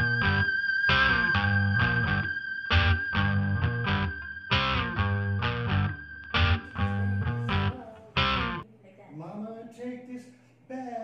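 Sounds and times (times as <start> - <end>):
guitar strummed chords: 0.0 - 8.6
person talking: 6.8 - 11.0.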